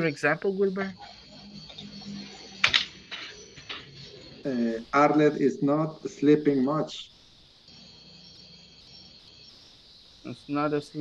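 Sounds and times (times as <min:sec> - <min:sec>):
low hum: 0:00.0 - 0:09.3
high-pitched chirring: 0:00.0 - 0:11.0.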